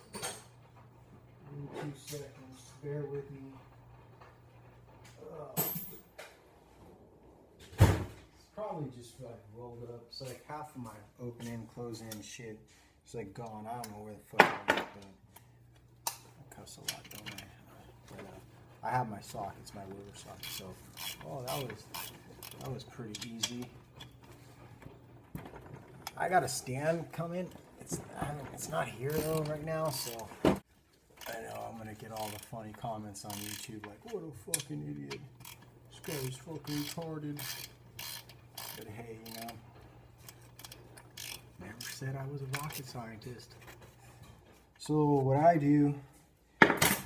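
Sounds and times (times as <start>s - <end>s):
knocks and clunks of rummaging: 19.4s - 30.7s.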